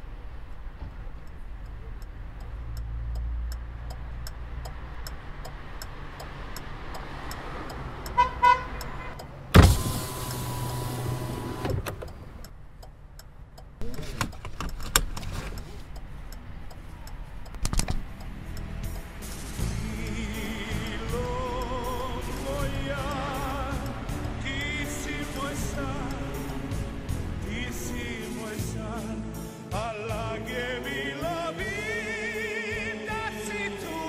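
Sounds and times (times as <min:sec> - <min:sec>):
car horn honks: 0:08.1 - 0:10.6
car engine running: 0:09.0 - 0:29.2
power window whirring: 0:09.6 - 0:12.4.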